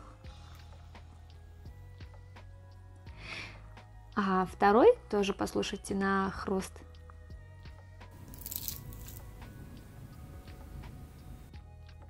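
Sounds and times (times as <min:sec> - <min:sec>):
background music: 0:00.0 - 0:12.0
cookie crumbling and tearing: 0:08.2 - 0:09.4
cookie crust crackling: 0:08.2 - 0:09.4.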